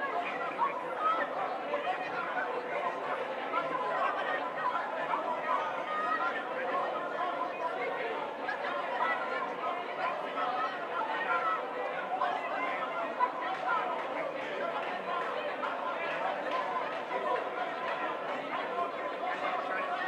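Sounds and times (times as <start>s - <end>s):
congregation praying aloud: 0.0s - 20.0s.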